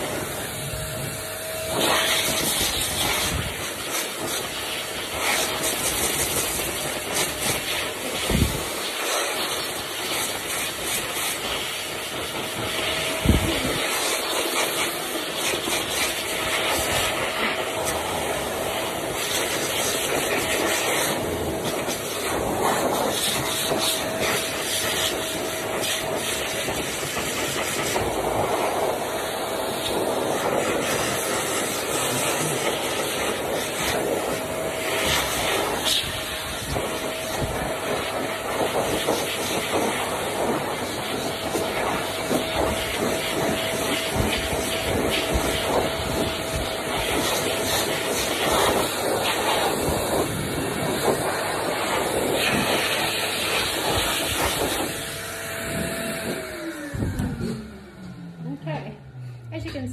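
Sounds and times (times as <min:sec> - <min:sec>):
pet dryer blowing air: 0:00.0 - 0:59.9.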